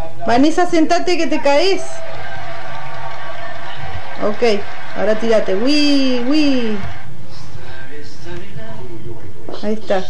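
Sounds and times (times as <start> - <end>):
camcorder hum and hiss: 0.0 - 10.0
faint background music: 0.0 - 10.0.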